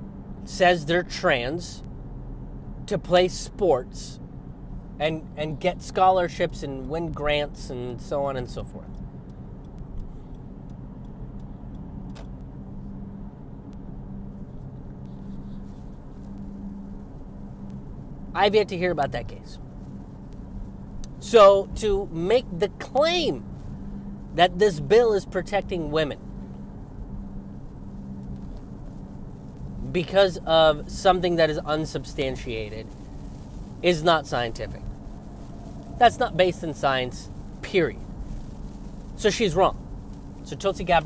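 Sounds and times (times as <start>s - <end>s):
car road and engine hum: 0.0s - 41.0s
faint light ticks: 8.8s - 12.5s, 19.8s - 21.2s.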